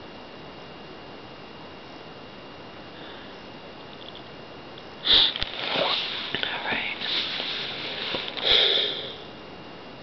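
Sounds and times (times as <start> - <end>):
person breathing and sniffing: 5.0 - 9.3.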